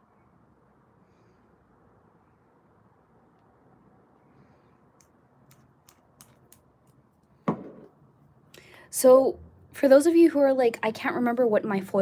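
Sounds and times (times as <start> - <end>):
plastic stick knock: 7.5 - 7.9.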